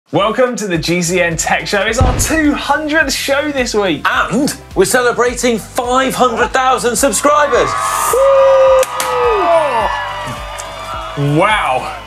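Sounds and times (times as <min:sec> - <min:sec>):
confetti cannons popping: 0:02.0 - 0:03.2
man whooping: 0:07.6 - 0:10.5.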